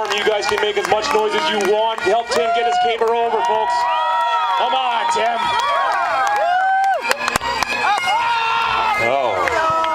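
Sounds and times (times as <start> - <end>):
people shouting encouragement: 0.0 - 7.0.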